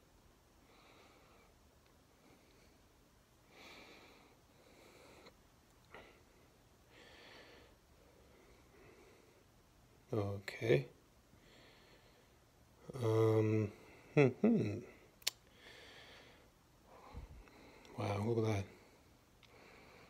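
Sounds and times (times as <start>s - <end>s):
faint breathing close to microphone: 0.6s - 9.5s, 11.3s - 12.5s, 15.5s - 20.0s.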